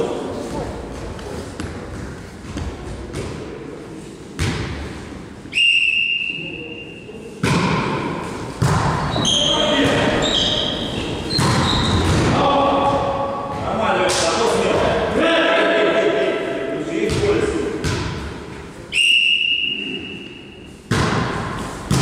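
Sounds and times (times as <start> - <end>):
whistle blast: 5.5 - 7.0, 18.9 - 20.4.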